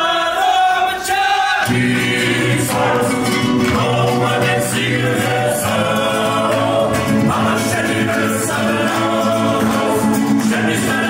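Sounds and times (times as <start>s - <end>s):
male choir singing: 0.0s - 11.0s.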